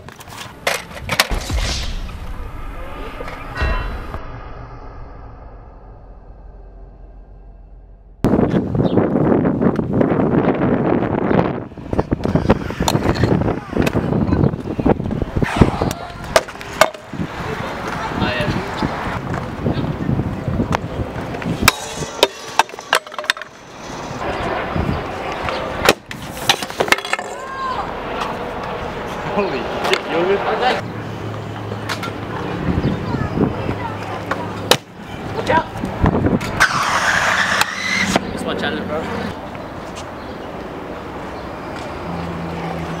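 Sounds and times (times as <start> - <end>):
scooter wheels rolling on concrete: 0.0 - 1.3, 11.6 - 43.0.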